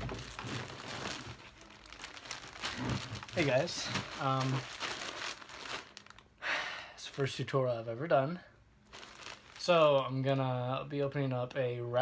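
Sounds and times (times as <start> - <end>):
plastic wrapper crinkling: 0.0 - 6.3, 8.8 - 10.4.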